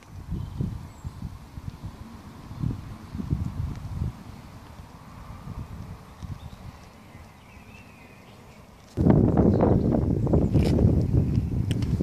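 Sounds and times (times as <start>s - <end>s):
wind buffeting microphone: 0.0s - 8.2s, 8.9s - 12.0s.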